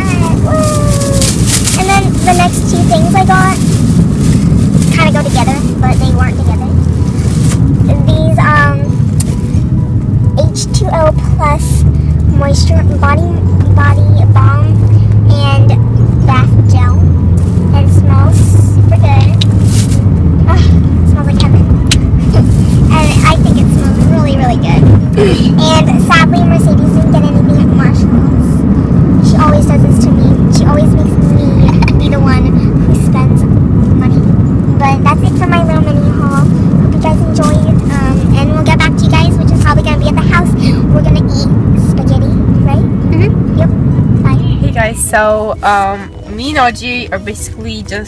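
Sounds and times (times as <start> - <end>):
girl talking: 0.0 - 3.7, 4.8 - 6.8, 7.8 - 9.0, 10.4 - 17.1, 17.7 - 19.4, 20.4 - 28.6, 29.2 - 47.2
car cabin rumble: 0.0 - 48.0.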